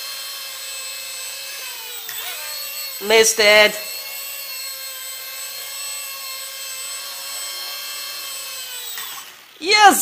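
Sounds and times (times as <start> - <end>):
toy helicopter motor whine: 0.0 - 10.0.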